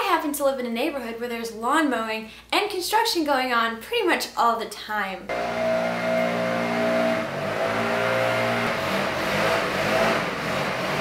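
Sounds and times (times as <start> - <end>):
motor engine droning: 5.3 - 11.0.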